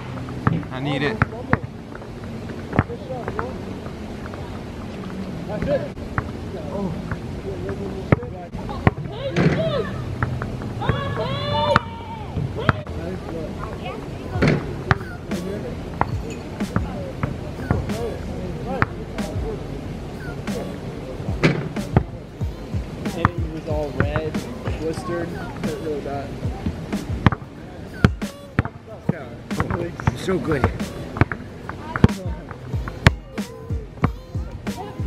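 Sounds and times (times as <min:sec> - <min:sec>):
background music: 0:14.3 - 0:35.0
basketball bouncing: 0:21.3 - 0:24.8.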